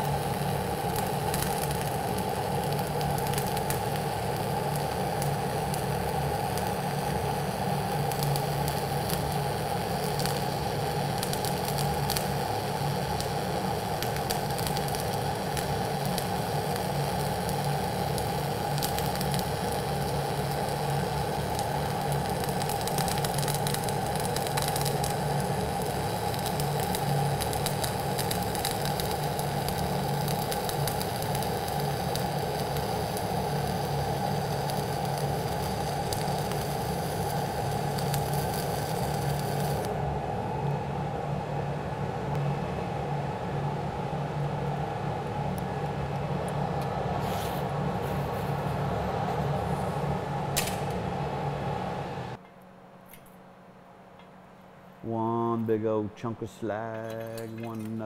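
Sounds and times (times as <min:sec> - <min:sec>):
welding arc crackling: 0:00.0 - 0:40.0.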